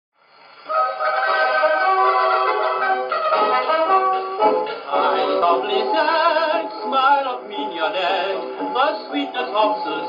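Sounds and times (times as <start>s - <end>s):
dance band playing fox trot: 0.7s - 5.6s.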